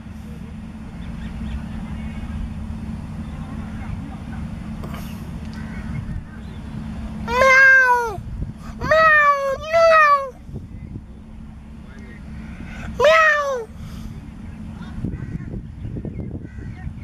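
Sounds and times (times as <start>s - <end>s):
low outdoor rumble: 0.0s - 17.0s.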